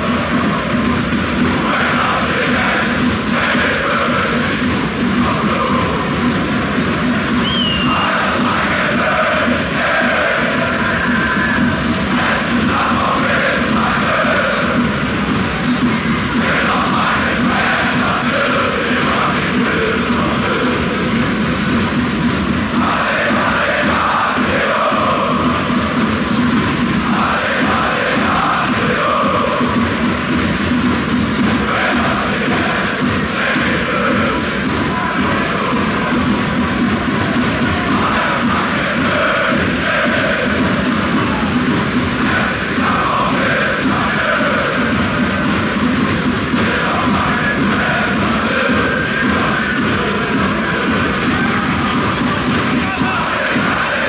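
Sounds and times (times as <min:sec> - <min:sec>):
crowd chanting: 0:00.0 - 0:54.0.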